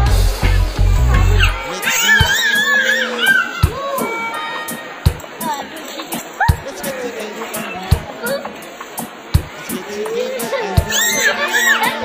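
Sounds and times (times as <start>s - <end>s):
toddler squealing: 1.4s - 4.9s, 10.5s - 12.0s.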